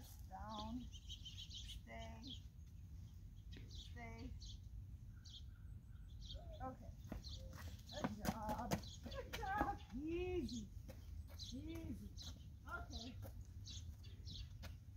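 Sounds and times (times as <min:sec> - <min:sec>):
small birds chirping: 0:00.0 - 0:14.9.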